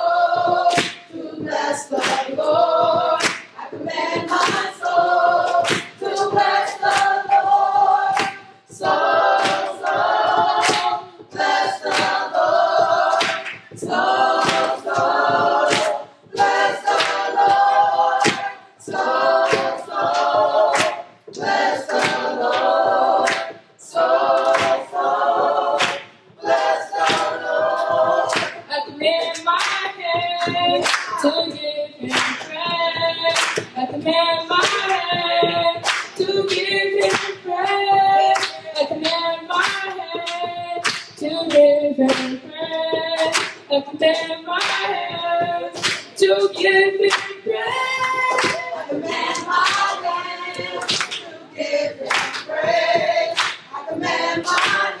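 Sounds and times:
children's choir singing: 0.0 - 55.0
hand claps: 0.3 - 55.0.

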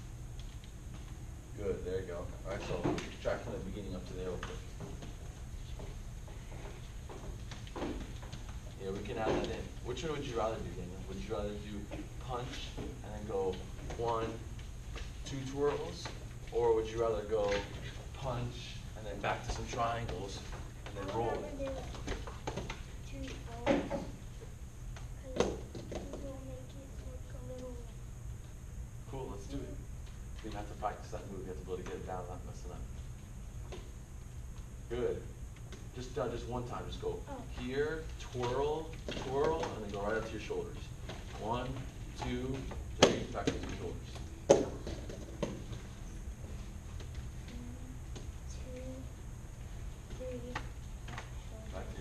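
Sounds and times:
steady low hum: 0.0 - 52.0
man speaking: 15.2 - 21.6, 29.1 - 29.8.

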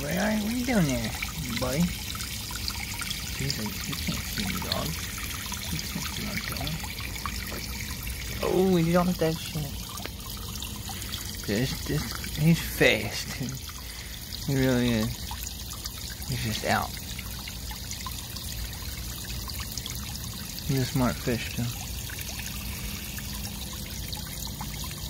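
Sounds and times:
water trickling into pond: 0.0 - 25.0.

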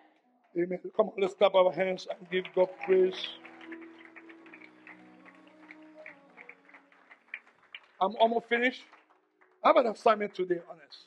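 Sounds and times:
faint handclaps: 2.1 - 11.0.

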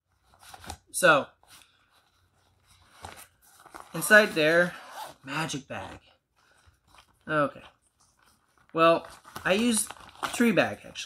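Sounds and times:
zipper unzipping: 4.6 - 5.3.

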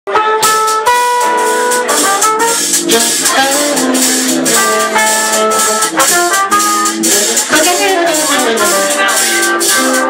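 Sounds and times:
horn holding long notes: 0.1 - 10.0
jazz band playing: 0.1 - 10.0.

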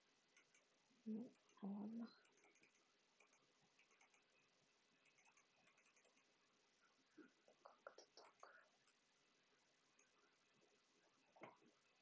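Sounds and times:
computer mouse clicking: 0.3 - 1.6, 2.2 - 6.4, 9.9 - 10.2.

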